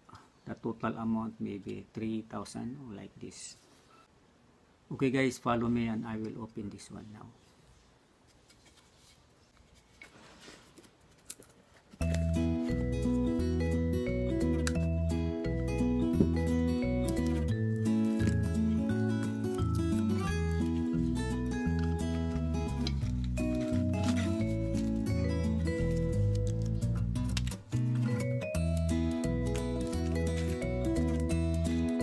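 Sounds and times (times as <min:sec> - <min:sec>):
background music with bass line: 0:12.1 - 0:32.0.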